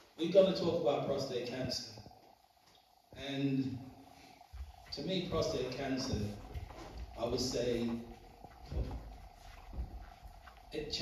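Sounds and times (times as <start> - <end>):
man speaking into a microphone: 0.0 - 2.1, 3.1 - 3.9, 4.9 - 8.2, 10.7 - 11.0.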